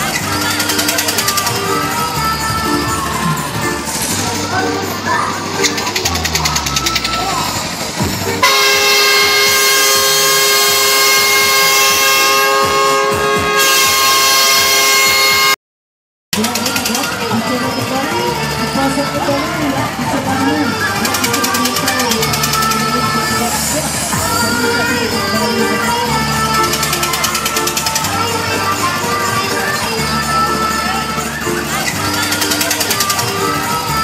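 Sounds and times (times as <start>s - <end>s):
voices: 0.0s - 13.4s, 16.4s - 34.0s
fairground music: 0.0s - 15.6s, 16.4s - 34.0s
loud steady horn: 8.4s - 15.6s, 21.5s - 33.9s.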